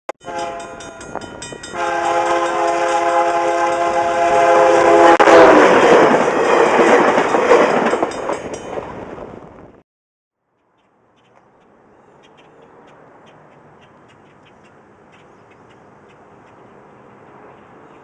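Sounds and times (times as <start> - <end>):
locomotive horn: 0.2 - 1.0, 1.7 - 6.0
train rumble and clatter: 0.3 - 9.8, 12.4 - 18.0.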